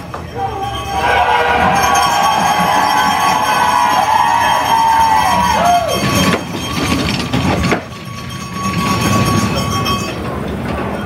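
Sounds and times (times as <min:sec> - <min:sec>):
bobsled runners rumbling on ice: 0:00.7 - 0:11.0.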